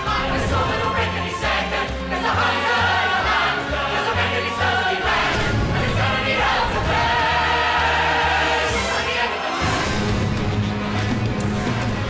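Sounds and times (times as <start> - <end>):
chorus singing loudly: 0.0 - 10.4.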